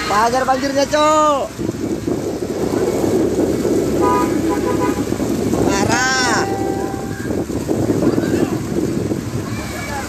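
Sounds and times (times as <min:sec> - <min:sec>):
vehicle engine in floodwater: 0:00.0 - 0:10.0
vehicle horn toots: 0:03.9 - 0:05.2, 0:06.2 - 0:07.4.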